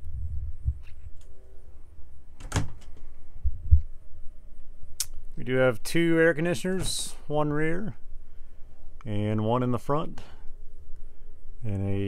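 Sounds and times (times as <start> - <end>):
low rumble: 0.0 - 2.3, 3.2 - 5.4.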